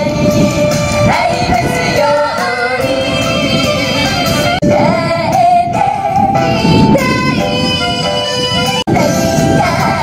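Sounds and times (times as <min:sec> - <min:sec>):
backing music through speakers: 0:00.0 - 0:10.0
women singing pop song: 0:01.0 - 0:10.0.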